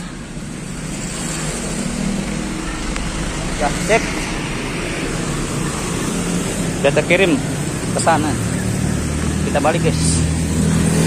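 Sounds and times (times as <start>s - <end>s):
passing vehicle engines: 0.0s - 11.0s.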